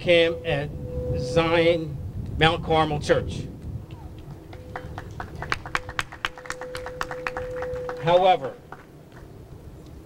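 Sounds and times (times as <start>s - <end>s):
people clapping: 3.9s - 9.3s.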